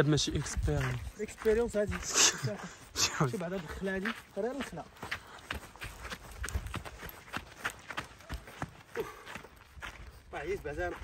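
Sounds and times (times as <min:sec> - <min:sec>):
running footsteps on sand: 0:00.0 - 0:11.0.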